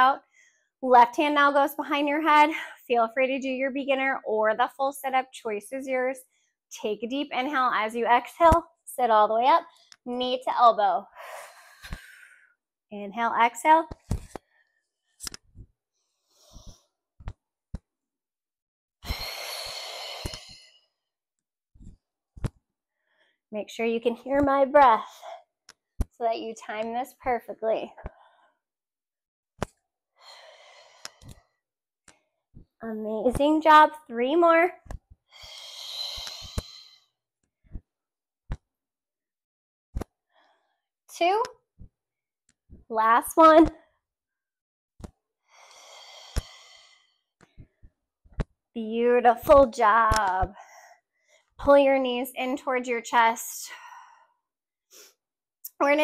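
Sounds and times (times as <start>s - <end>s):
woman exhaling forcefully: 35.4s - 37.0s.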